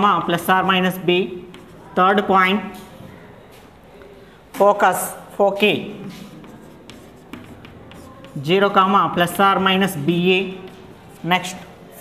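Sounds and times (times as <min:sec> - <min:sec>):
chalk tapping on chalkboard: 0:00.0 - 0:02.0, 0:05.6 - 0:11.7
chalk scratching on chalkboard: 0:00.2 - 0:02.9, 0:05.6 - 0:11.8.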